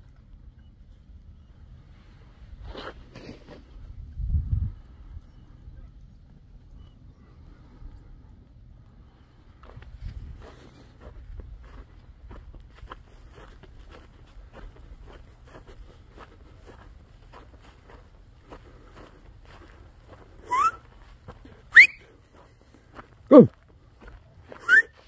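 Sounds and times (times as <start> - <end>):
rising whistle-like calls: 20.4 - 20.8, 21.7 - 22.0, 24.6 - 25.0.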